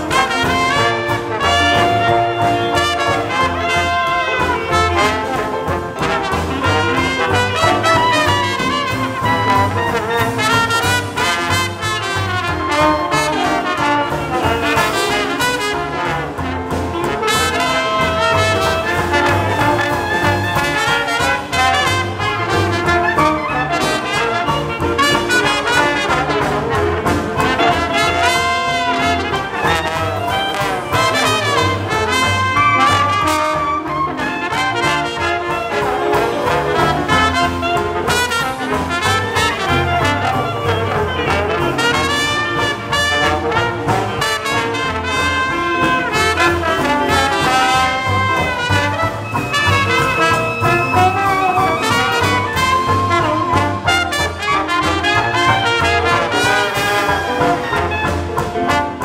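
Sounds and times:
jazz band playing live: 0.0s - 59.0s.

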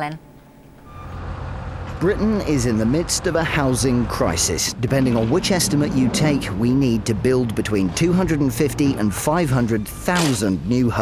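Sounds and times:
short beep: 0.0s - 1.2s, 9.8s - 10.5s
low vehicle engine rumble: 0.0s - 11.0s.

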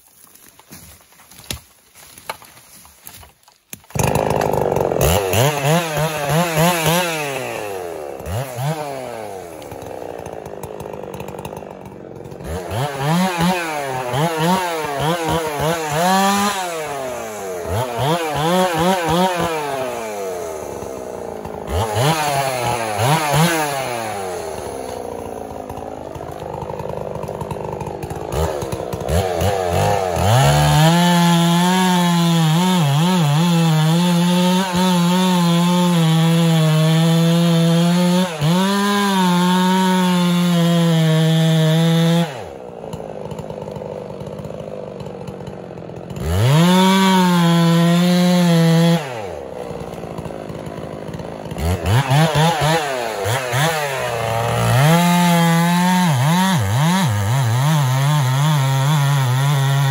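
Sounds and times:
chainsaw engine revving: 3.9s - 59.9s.

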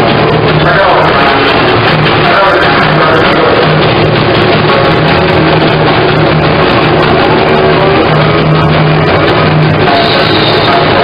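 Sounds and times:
drums: 0.0s - 11.0s
guitars: 0.0s - 11.0s
held low bass note: 0.0s - 11.0s.

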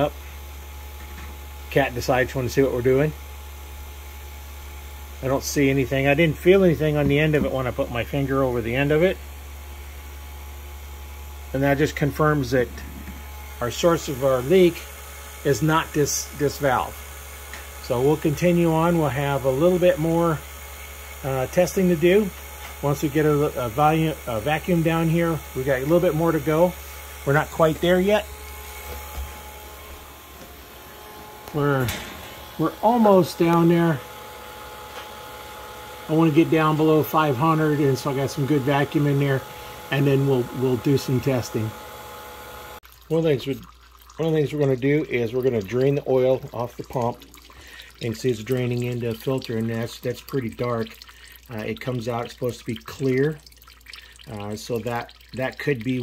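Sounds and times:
vacuum pump humming: 0.0s - 56.0s.

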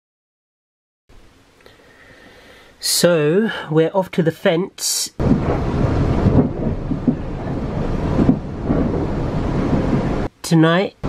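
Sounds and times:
train rumbling: 5.2s - 10.3s.

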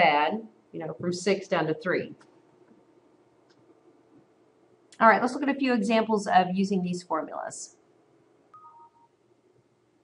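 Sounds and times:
email notification chime: 8.6s - 9.1s.

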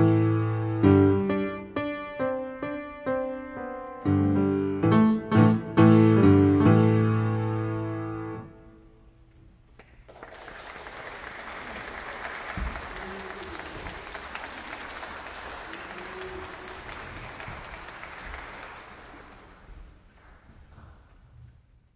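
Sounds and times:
audience applauding: 9.8s - 20.6s.

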